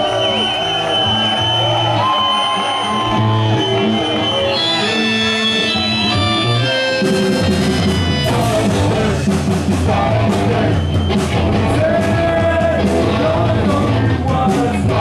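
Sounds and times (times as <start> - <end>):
bass guitar: 0.0 - 15.0
electric guitar: 0.0 - 15.0
held organ chords: 2.9 - 9.2
drums and cymbals: 6.0 - 15.0.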